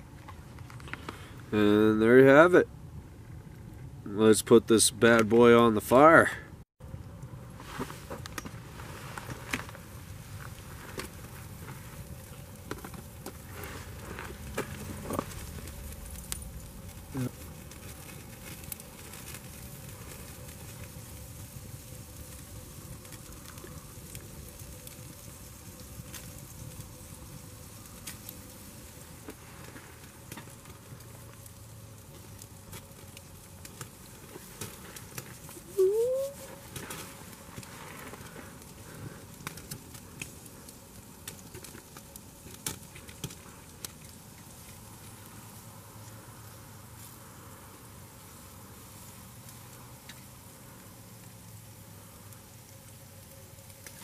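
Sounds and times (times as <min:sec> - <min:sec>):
fire crackling and popping: 0:00.0 - 0:54.0
steak sizzling on a grill: 0:08.9 - 0:54.0.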